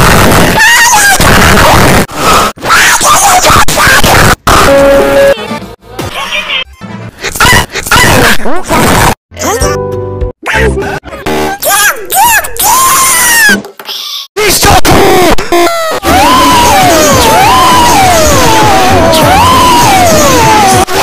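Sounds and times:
voice-like wail sliding: 15.8 - 21.0.

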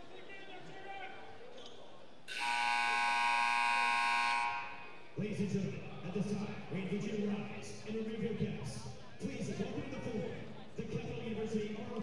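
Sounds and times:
scoreboard horn blast: 2.3 - 5.0.

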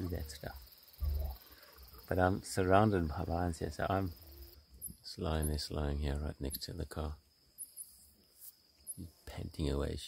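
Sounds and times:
crickets trilling: 0.0 - 10.0.

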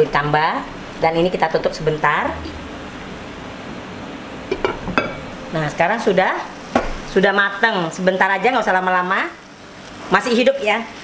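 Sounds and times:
food sizzling in a wok: 4.5 - 11.0.

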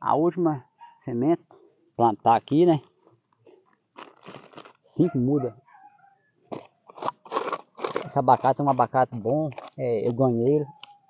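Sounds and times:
hands scraping sandy soil: 6.9 - 10.4.

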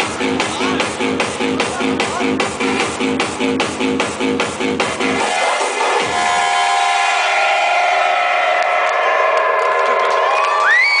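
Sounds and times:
techno synth chords: 0.0 - 10.3
crowd cheering: 5.0 - 11.0.

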